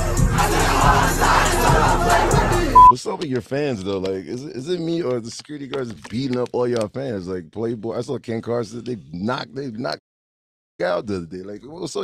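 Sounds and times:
live rap music with bass beat: 0.0 - 3.2.

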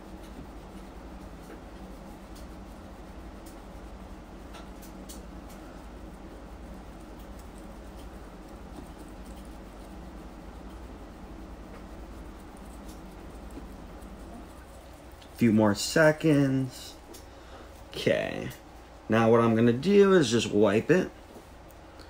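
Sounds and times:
cloth scrubbing: 0.0 - 16.7
low steady hum: 0.0 - 22.0.

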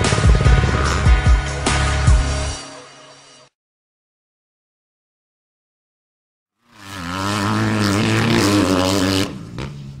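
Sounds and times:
dirt bike engine revving: 0.0 - 1.4, 6.7 - 10.0.

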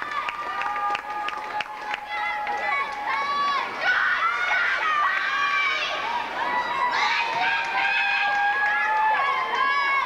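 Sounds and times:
spectators shouting and cheering: 0.0 - 10.0.

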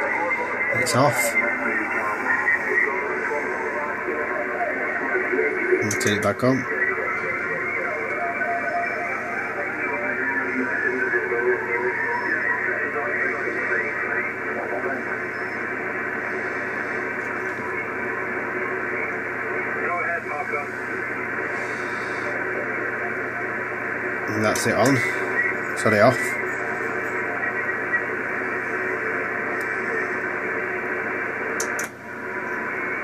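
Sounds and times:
faint radio voice: 0.0 - 31.8
radio band noise hiss: 0.0 - 33.0
steady interference tones: 0.0 - 33.0.

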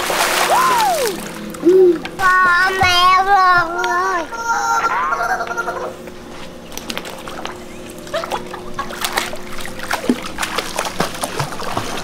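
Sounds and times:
water splashing: 0.0 - 2.3, 6.7 - 12.0.

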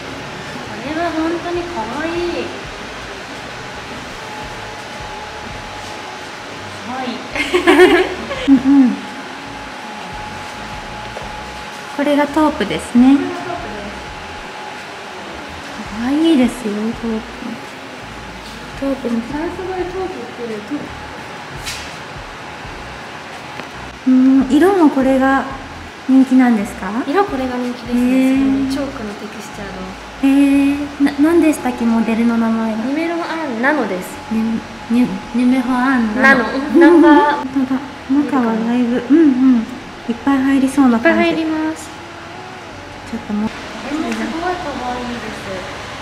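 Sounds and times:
faint steady hum: 0.0 - 46.0
ventilation air hiss: 0.0 - 46.0
woman humming: 7.4 - 10.9, 24.0 - 24.8, 34.1 - 44.3.

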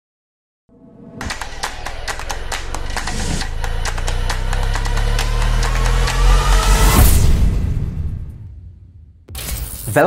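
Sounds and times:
low rumbling drone: 0.7 - 9.2.

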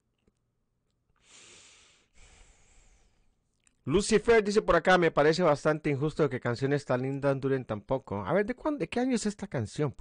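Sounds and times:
man breathing out: 1.2 - 3.3.

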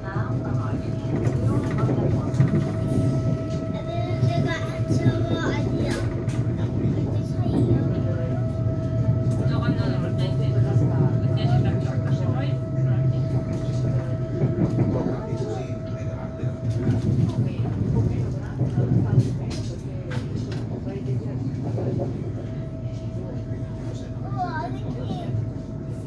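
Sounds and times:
train running low rumble: 0.0 - 26.0.

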